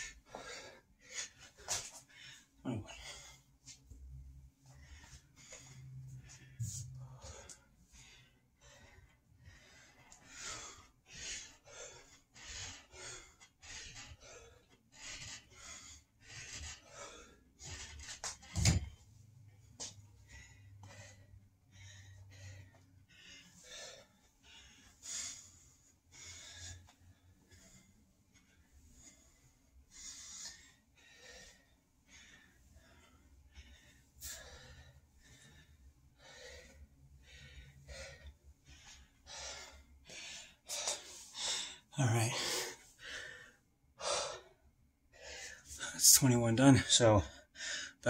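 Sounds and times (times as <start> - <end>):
man breathing hard: 0.0 - 46.0, 47.2 - 48.0.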